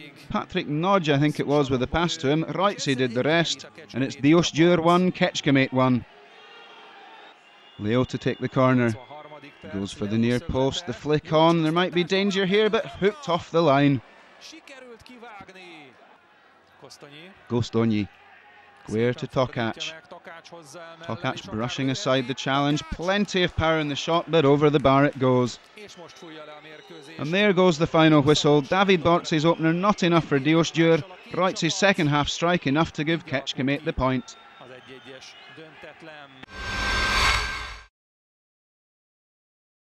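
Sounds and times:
faint stadium voices: 0.0s - 36.5s
loud rushing whoosh: 36.5s - 37.9s.

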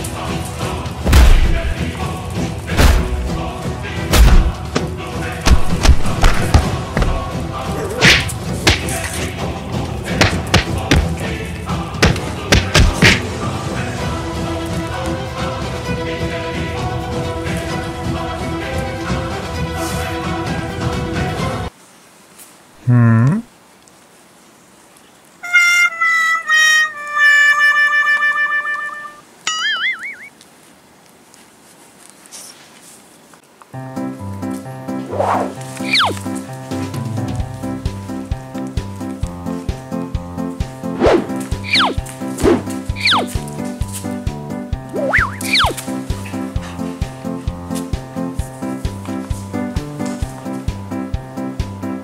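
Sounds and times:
background music: 0.0s - 21.7s, 33.8s - 52.0s
punch and thud hits: 1.1s - 1.8s, 2.8s - 3.3s, 4.1s - 4.6s, 5.5s - 7.3s, 8.0s - 9.0s, 10.2s - 11.2s, 12.0s - 13.3s, 42.4s - 42.8s.

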